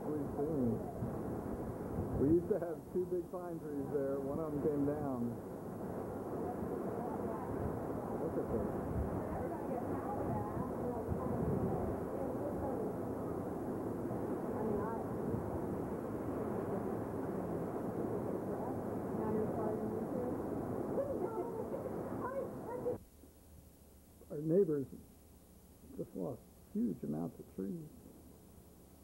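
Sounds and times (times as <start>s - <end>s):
wind buffeting microphone: 0.0s - 2.8s, 3.4s - 23.0s
strong wind gusting through trees: 0.0s - 24.1s.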